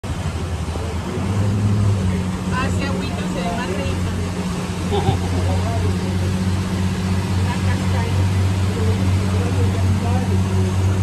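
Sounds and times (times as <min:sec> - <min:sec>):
boat engine humming: 0:00.0 - 0:11.0
water noise: 0:00.0 - 0:11.0
wind: 0:00.0 - 0:11.0
voices talking: 0:00.6 - 0:11.0.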